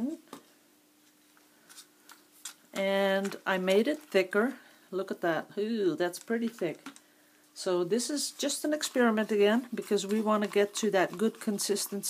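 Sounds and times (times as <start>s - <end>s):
stir stick tapping and scraping cup: 8.4s - 12.0s.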